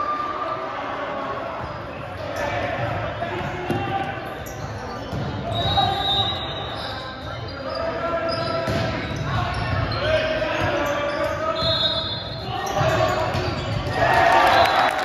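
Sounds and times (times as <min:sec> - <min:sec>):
crowd cheering: 0:13.8 - 0:15.0.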